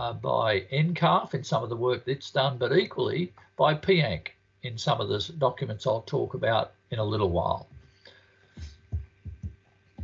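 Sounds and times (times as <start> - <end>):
low dull thumps: 8.6 - 10.0.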